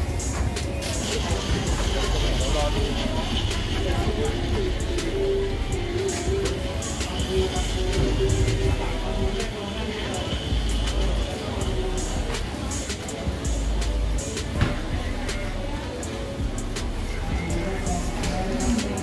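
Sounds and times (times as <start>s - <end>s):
indistinct voices: 0.0s - 19.0s
music playing: 0.0s - 19.0s.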